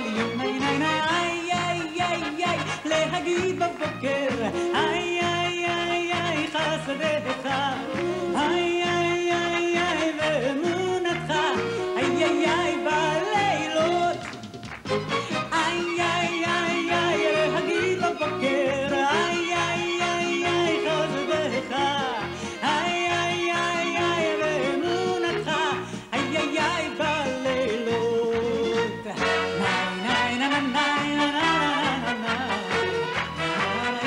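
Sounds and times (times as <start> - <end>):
woman singing into a microphone: 0.0 - 14.3, 15.4 - 33.0
band with bass beat: 0.0 - 17.3.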